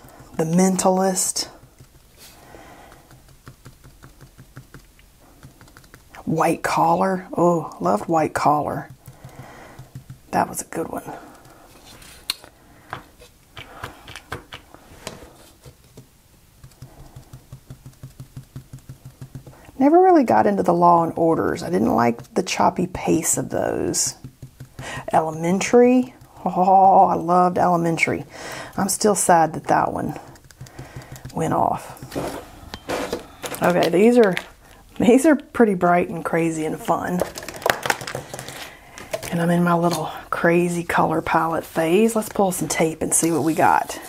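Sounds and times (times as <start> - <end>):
crinkling and crackling clicks: 0.0 - 6.3, 28.6 - 35.5, 36.8 - 40.2
marker tip tapping on paper: 2.7 - 6.1, 8.8 - 10.4, 15.9 - 19.7, 23.9 - 27.0, 30.2 - 31.5.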